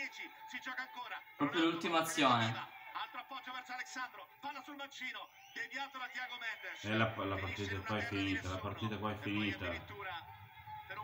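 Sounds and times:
football commentary on television: 0.0 - 11.0
talk in the room: 0.0 - 11.0.

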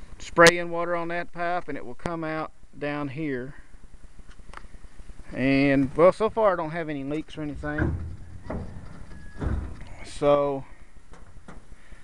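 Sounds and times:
low rumble: 7.4 - 10.2
dull thumps: 7.4 - 12.0.

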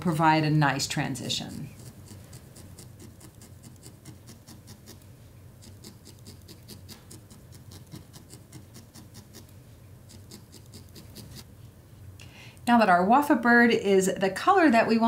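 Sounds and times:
felting needle poking wool: 1.4 - 11.5.

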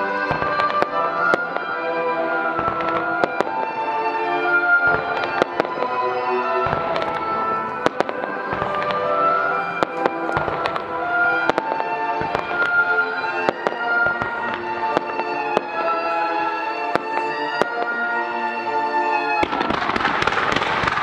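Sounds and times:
music playing: 0.0 - 20.3
fireworks bursting: 0.0 - 21.0.

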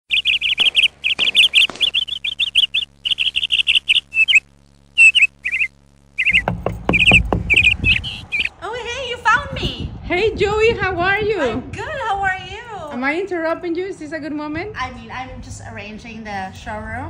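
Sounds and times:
small bird chirping: 0.0 - 8.6
irregular low thuds: 6.0 - 8.6.

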